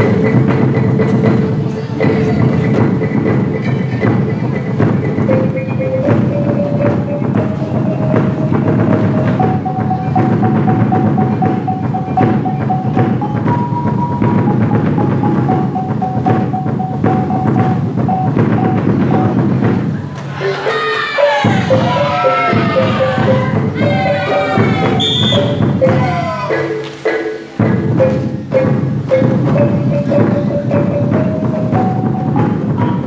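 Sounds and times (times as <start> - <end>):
drums beating fast rhythm: 0.0 - 33.0
reed pipe melody: 0.0 - 33.0.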